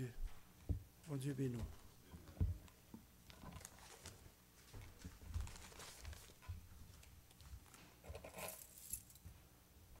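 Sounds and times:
paper rustle: 0:03.6 - 0:08.5.

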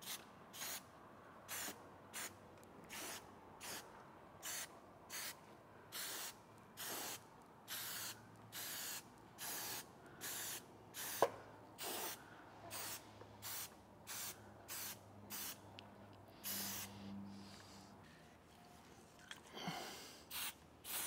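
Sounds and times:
aerosol spray can hissing: 0:06.0 - 0:15.6, 0:16.4 - 0:17.0, 0:20.3 - 0:21.0.

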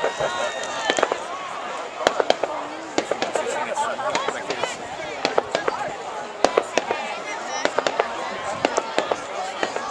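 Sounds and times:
people's voices: 0:00.0 - 0:09.9
fireworks bangs and cracks: 0:02.0 - 0:05.8, 0:06.4 - 0:09.9.

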